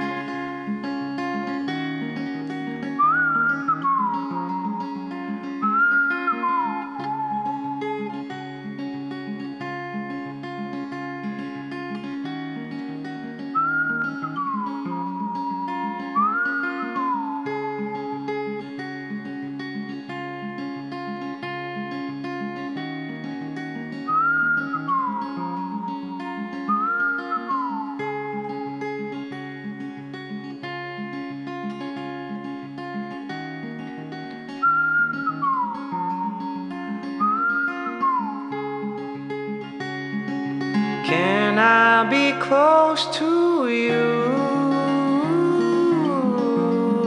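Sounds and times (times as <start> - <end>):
acoustic guitar fingerpicked: 0.0 - 47.0
whistled melody: 3.0 - 8.7, 13.5 - 19.2, 23.9 - 29.7, 34.5 - 46.1.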